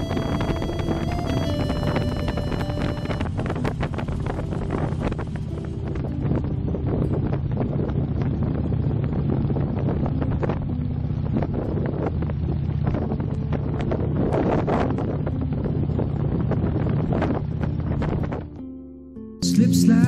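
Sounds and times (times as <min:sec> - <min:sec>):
motorcycle engine cruising: 0:00.0 - 0:18.8
wind buffeting microphone: 0:00.0 - 0:18.8.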